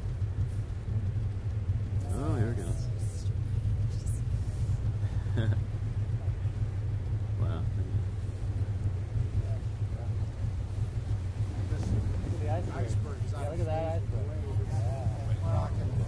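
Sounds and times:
boat motor droning: 0:00.0 - 0:16.0
bursts of voices: 0:01.9 - 0:05.0.

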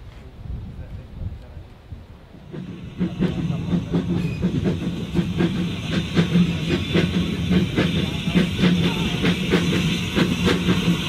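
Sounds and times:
steam hissing: 0:02.4 - 0:11.0
steam locomotive chuffing: 0:02.4 - 0:11.0.

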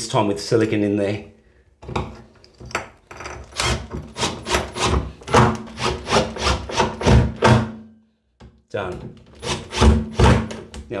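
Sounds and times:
cordless drill driving screw: 0:03.4 - 0:07.1.

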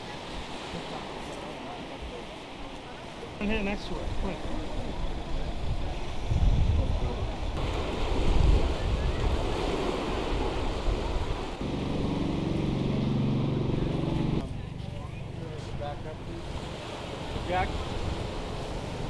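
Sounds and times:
surf on beach: 0:00.0 - 0:19.0
wind buffeting microphone: 0:03.9 - 0:14.5.

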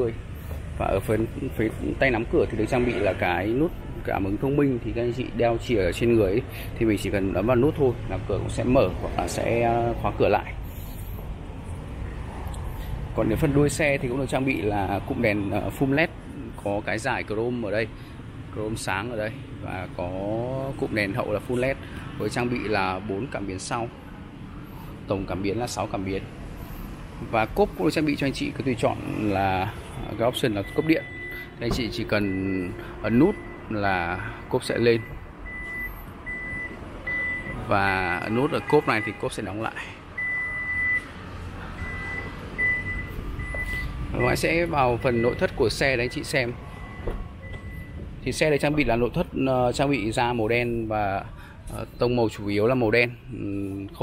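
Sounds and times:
high warning beeps: 0:30.4 - 0:33.7, 0:34.9 - 0:37.6, 0:40.2 - 0:41.1, 0:41.8 - 0:48.0.

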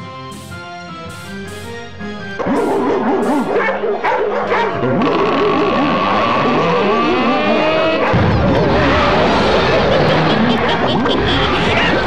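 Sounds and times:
eerie wavering voices: 0:02.3 - 0:12.0.

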